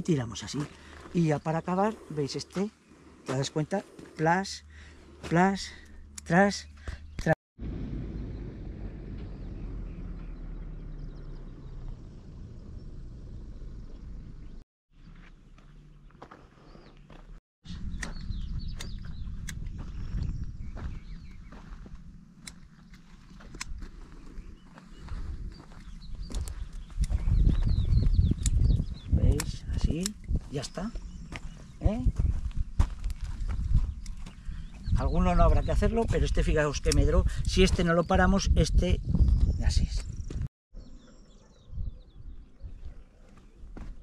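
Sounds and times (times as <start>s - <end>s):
wind rumbling on microphone: 17.7s - 40.5s, 41.4s - 44.0s.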